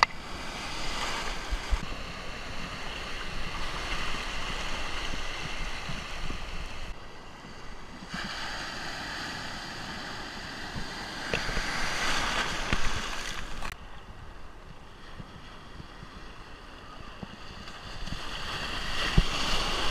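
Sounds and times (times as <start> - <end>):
wind on microphone: 0.0 - 19.9
surf breaking: 8.0 - 13.8.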